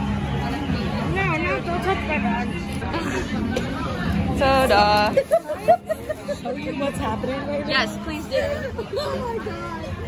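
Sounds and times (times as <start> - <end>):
street traffic hum: 0.0 - 10.0.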